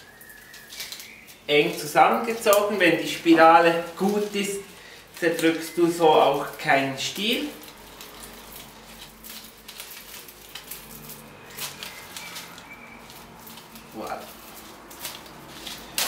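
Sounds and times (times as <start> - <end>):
leaves and stems rustling: 0.0 - 16.0
raffia crinkling: 0.0 - 16.0.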